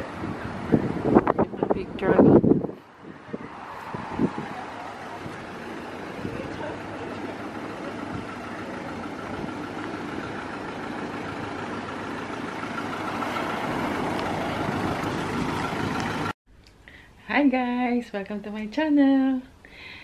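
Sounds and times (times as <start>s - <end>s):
vehicle engine running with whine: 0.0s - 16.4s.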